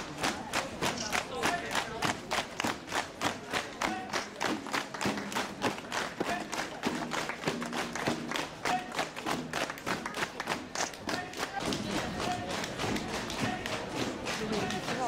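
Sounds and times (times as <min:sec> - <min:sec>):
marching footsteps on cobblestones: 0:00.0 - 0:15.0.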